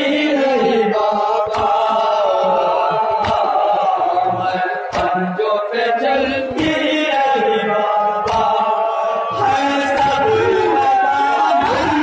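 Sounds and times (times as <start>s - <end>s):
men chanting a lament: 0.0s - 12.0s.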